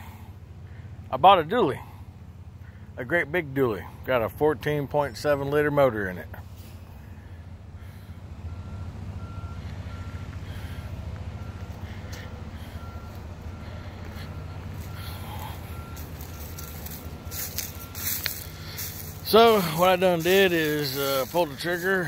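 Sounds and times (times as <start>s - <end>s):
truck diesel engine idling: 0.0s - 22.0s
high warning beep: 11.4s - 22.0s.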